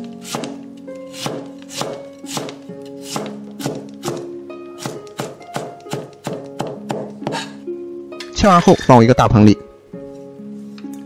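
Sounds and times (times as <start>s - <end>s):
background music: 0.0s - 11.0s
cleaver chopping on wooden board: 0.2s - 7.5s.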